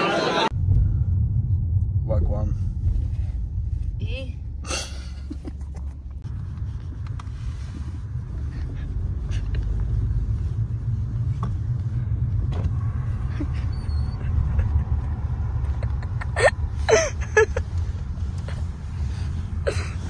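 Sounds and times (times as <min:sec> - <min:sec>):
car interior rumble: 0:00.5 - 0:20.0.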